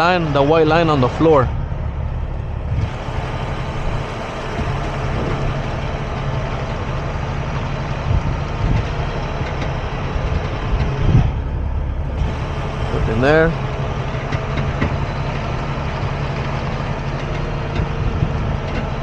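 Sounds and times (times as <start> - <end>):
truck diesel engine running: 0.0 - 19.0.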